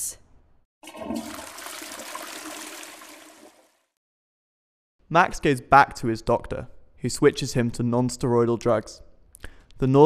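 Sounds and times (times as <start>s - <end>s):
toilet flush water rush: 0.8s - 3.9s.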